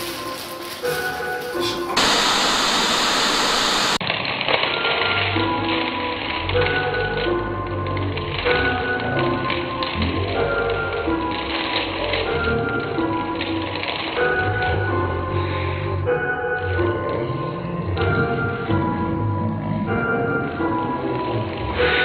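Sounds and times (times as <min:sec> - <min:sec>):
background music with held notes: 0:00.0 - 0:02.0, 0:04.4 - 0:22.0
video static hiss: 0:02.0 - 0:04.0.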